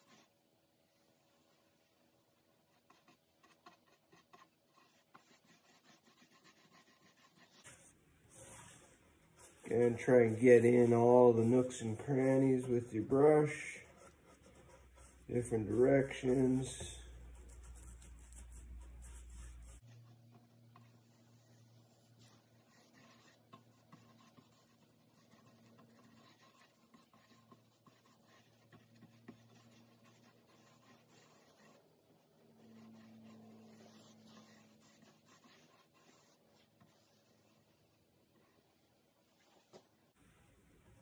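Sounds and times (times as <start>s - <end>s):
paintbrush scratching on bark: 2.8s - 7.8s, 8.4s - 31.9s, 32.6s - 37.8s.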